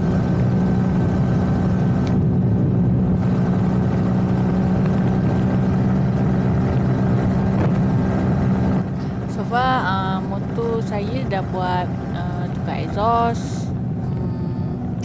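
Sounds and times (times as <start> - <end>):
motorcycle engine cruising: 0.0 - 15.0.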